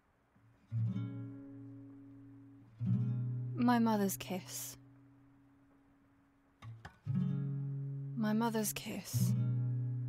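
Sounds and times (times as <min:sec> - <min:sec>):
acoustic guitar chords: 0:00.6 - 0:05.6, 0:06.6 - 0:10.0.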